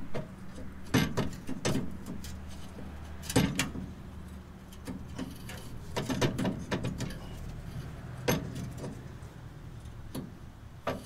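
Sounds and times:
metal knocks and clacks: 4.7s - 7.5s.

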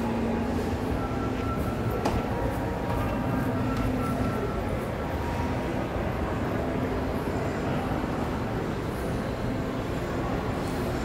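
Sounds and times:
indoor mall background hum: 0.0s - 11.0s.

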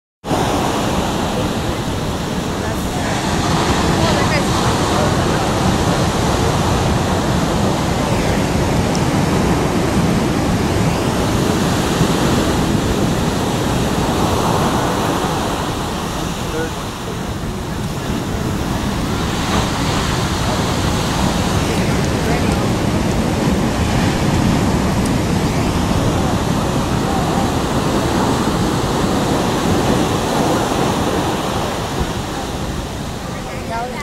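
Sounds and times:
ocean surf breaking: 0.2s - 34.0s
wind on microphone: 0.2s - 34.0s.

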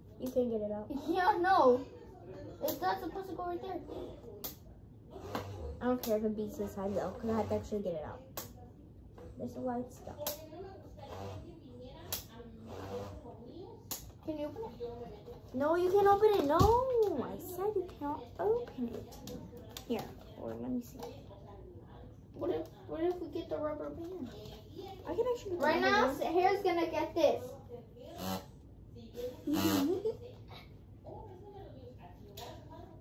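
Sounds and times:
indistinct voices talking: 5.1s - 8.2s.

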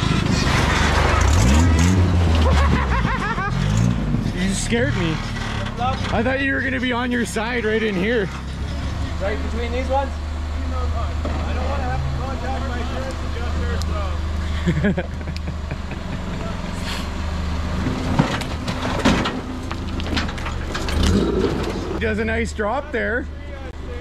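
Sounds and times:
buggy engine rumbling: 0.0s - 24.0s
sharp knocks and clatters: 17.8s - 22.0s.

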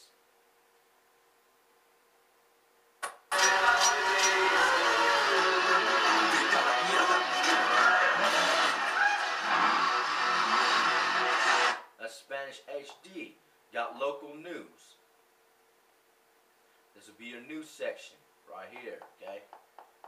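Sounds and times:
film soundtrack music from tv: 3.0s - 11.9s.

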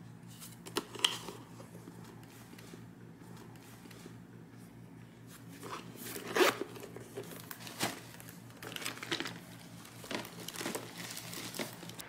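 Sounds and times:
tissue paper crinkling: 5.5s - 12.0s.

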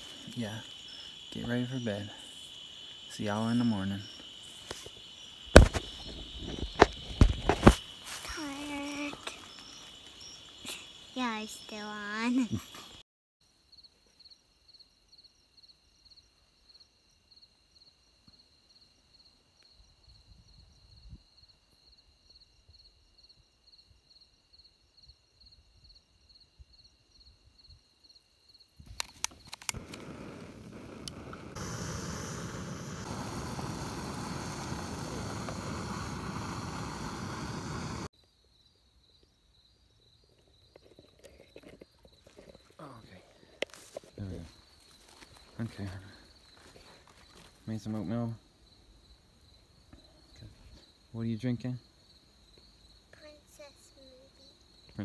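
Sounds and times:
crickets chirping: 0.0s - 55.0s
utility lighter clicks: 28.9s - 32.9s
stove burner hissing: 29.0s - 38.1s.

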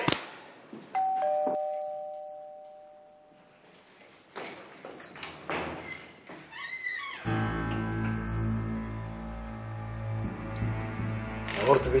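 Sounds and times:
two-tone doorbell ringing: 1.0s - 3.4s.

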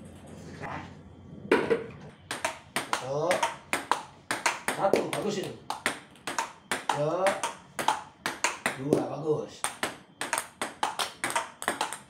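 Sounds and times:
ping-pong ball clicking: 2.3s - 12.0s.

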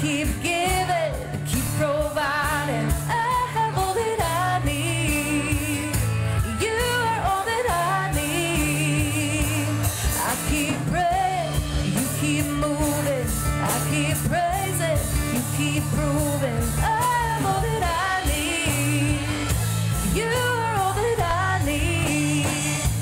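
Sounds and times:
voices singing: 0.0s - 23.0s
worship band playing: 0.0s - 23.0s.

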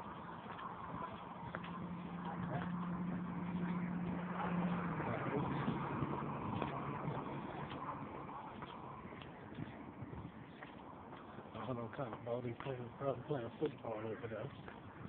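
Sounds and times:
road noise: 0.0s - 15.0s
vehicle engine hum: 0.0s - 15.0s.

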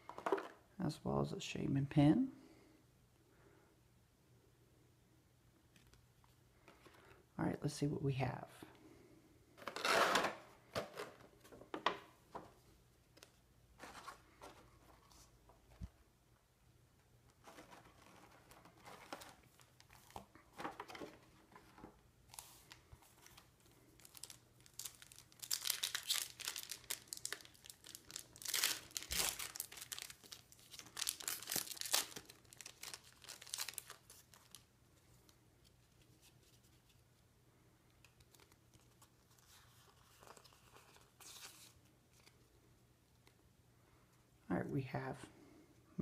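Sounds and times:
plastic blister crinkling: 17.2s - 37.0s.

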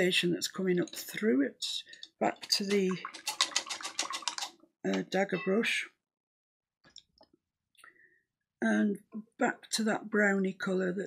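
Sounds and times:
paintbrush rattling in water pot: 1.8s - 4.6s.

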